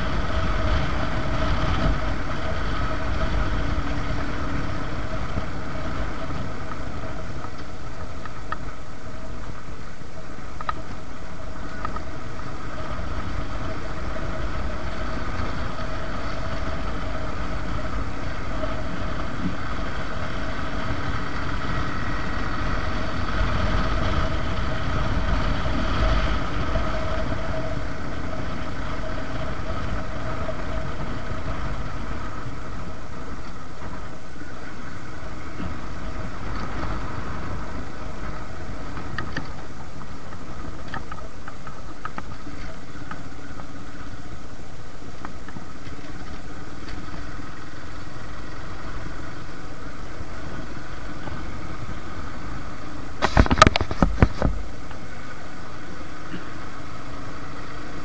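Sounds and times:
motorcycle engine running: 0.0 - 43.1
wind rushing over microphone: 0.0 - 58.0
faint clicks: 6.2 - 9.6, 10.5 - 12.2, 38.9 - 44.2.

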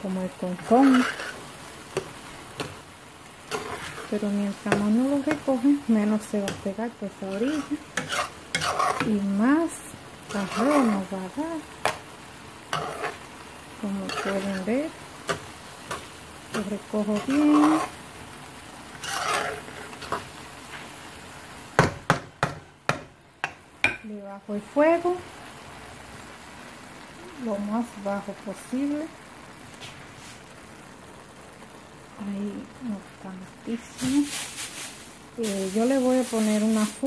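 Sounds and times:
food sizzling in a metal pot: 0.0 - 37.0
pan simmering with soft hiss: 0.0 - 37.0
metal spoon scraping rice: 0.6 - 2.8, 3.5 - 5.4, 7.3 - 9.2, 10.3 - 11.1, 12.7 - 13.3, 14.0 - 14.7, 15.3 - 18.0, 18.9 - 20.3.

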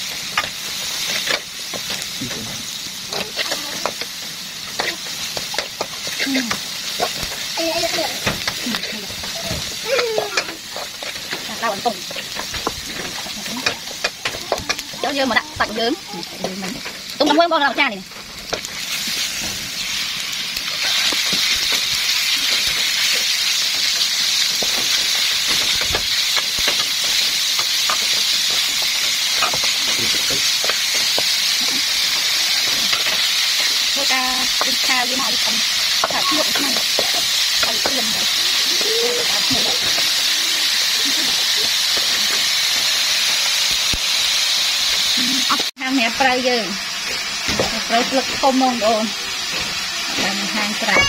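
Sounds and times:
food sizzling in a wok: 0.0 - 51.0.

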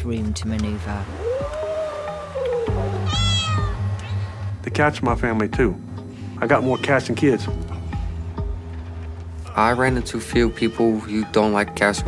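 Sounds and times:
cat yowling: 1.0 - 4.3, 10.3 - 11.1
cat meowing: 1.1 - 4.2, 10.3 - 11.1.

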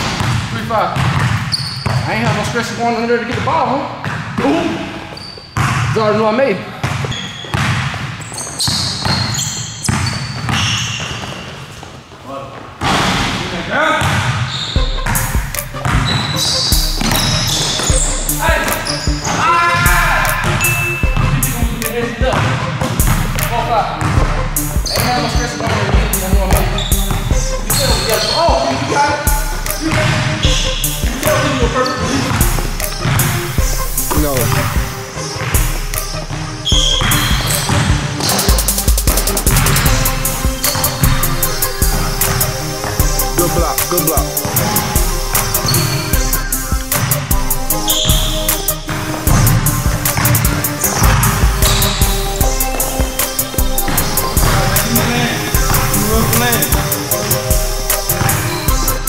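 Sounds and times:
basketball bouncing on court floor: 0.0 - 2.6, 3.3 - 12.0, 14.0 - 19.4, 20.1 - 28.8, 29.8 - 33.3, 36.7 - 40.0, 47.9 - 56.8, 58.1 - 58.8
music with pulsing bass: 14.8 - 28.7, 29.3 - 59.0.

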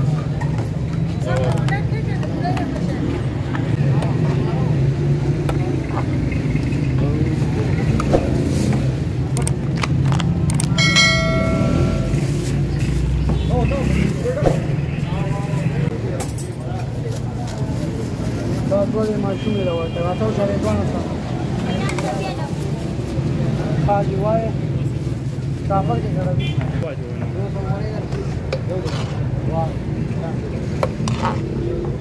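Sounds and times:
short pitched tone: 10.8 - 12.6
voices talking: 10.8 - 12.7.

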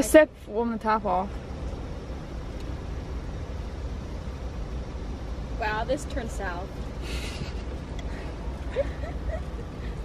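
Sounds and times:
steady low rumble with hiss: 0.0 - 10.0.

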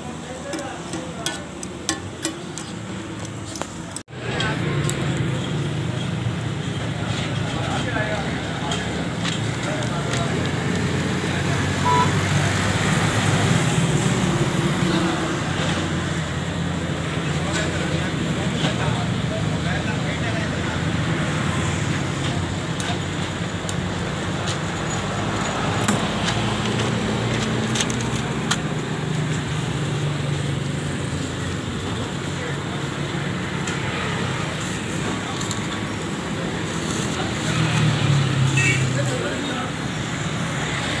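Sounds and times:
road traffic noise: 0.0 - 41.0.

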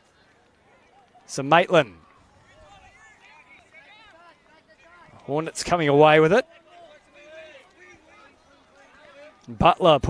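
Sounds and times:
distant people calling and shouting: 0.0 - 10.0.

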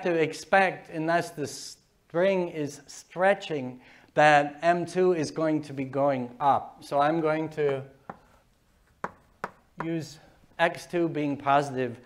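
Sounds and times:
chalk tapping on blackboard: 7.6 - 10.0.

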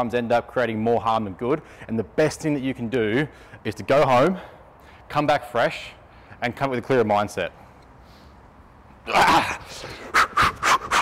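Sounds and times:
heavy breathing: 9.6 - 10.9.

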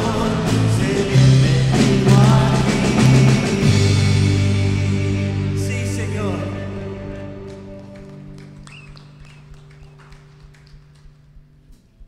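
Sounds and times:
guitar and bass chord ringing: 0.0 - 10.3.

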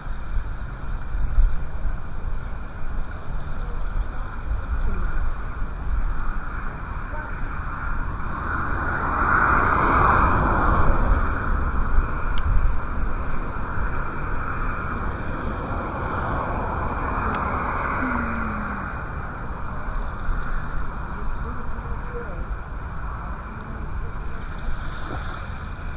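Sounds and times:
wind buffeting microphone: 0.0 - 25.9
faint indistinct voices: 6.5 - 7.9.

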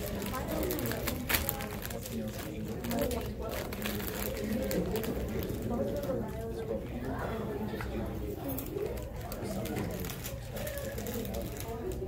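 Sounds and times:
muffled indistinct talking: 0.0 - 12.0.

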